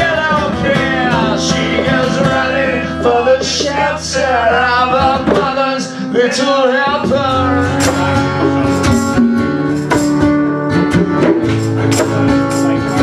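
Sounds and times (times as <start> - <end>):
person singing: 0.0 - 10.0
strummed acoustic guitar: 0.0 - 13.0.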